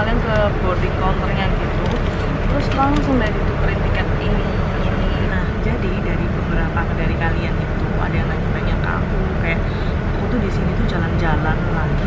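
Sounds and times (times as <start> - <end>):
bus engine rumble: 0.0 - 12.0.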